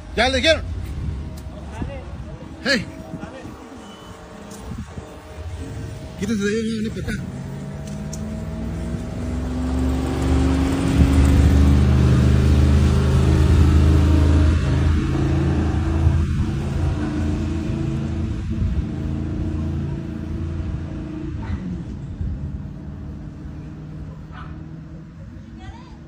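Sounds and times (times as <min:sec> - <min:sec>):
car engine driving past: 0:00.9 - 0:25.2.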